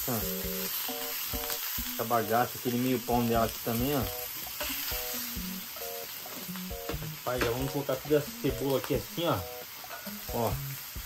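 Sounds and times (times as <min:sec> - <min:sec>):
meat sizzling on a griddle: 0:00.0 - 0:11.0.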